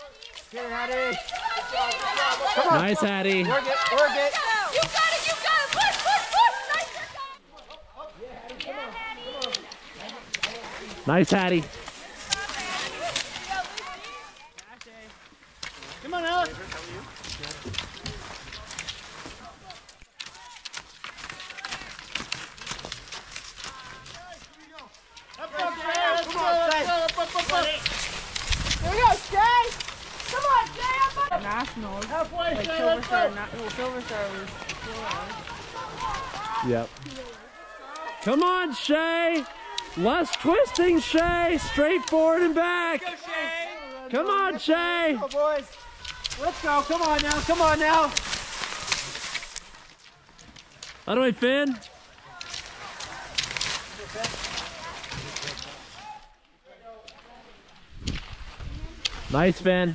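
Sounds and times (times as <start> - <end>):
people shouting encouragement: 0.0 - 14.6, 19.3 - 20.7, 23.6 - 28.0, 28.7 - 48.7
crunching and scraping on snow: 0.0 - 56.2.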